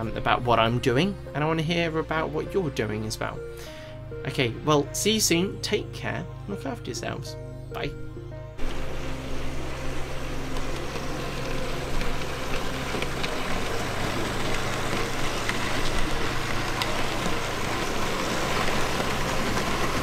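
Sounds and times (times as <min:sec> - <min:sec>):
model trains running on track: 0:08.6 - 0:20.0.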